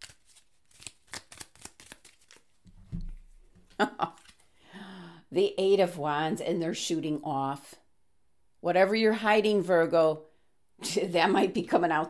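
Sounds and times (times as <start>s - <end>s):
cards being shuffled: 0.0s - 4.5s.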